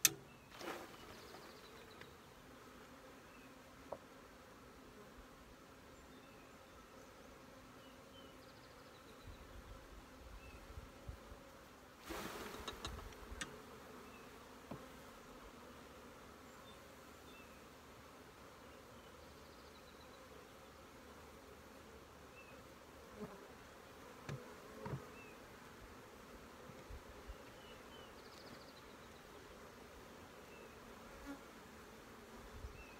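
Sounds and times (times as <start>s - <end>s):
honeybees buzzing: 0.0s - 32.9s
clicks and scrapes of hive frame: 12.2s - 13.7s, 24.1s - 25.2s.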